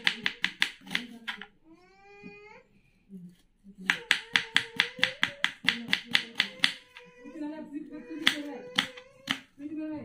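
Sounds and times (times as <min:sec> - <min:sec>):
knife chopping on wooden board: 0:00.0 - 0:01.5, 0:03.8 - 0:07.0, 0:08.2 - 0:09.5.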